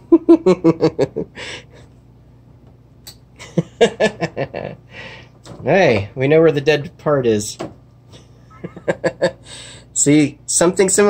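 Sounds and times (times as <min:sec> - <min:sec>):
man laughing: 0:00.0 - 0:01.8, 0:03.4 - 0:04.9, 0:08.1 - 0:09.5
breathy exhale: 0:04.9 - 0:05.4, 0:09.4 - 0:09.9.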